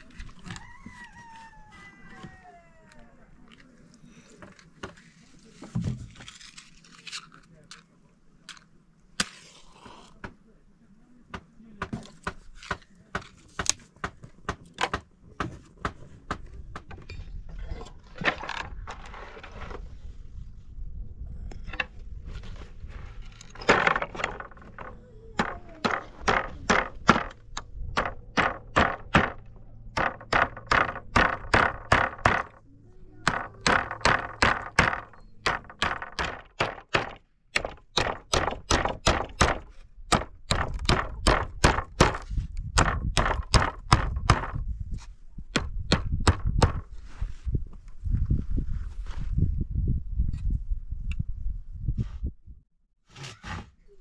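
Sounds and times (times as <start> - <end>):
hammer driving nails into wood: 23.6 - 32.6, 33.2 - 44.6.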